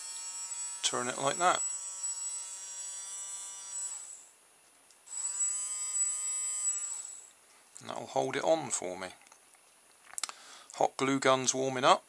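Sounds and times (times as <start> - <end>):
small electric motor whining: 0.0 - 4.4, 5.0 - 7.4.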